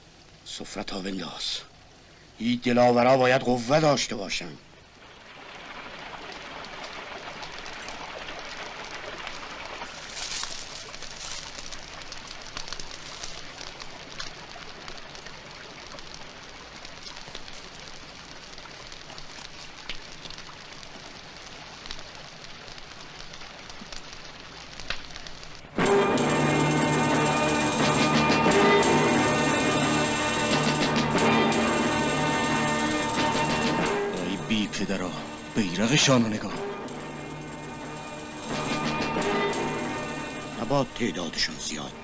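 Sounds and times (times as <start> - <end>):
waterfall rushing down rock: 5.0 - 20.2.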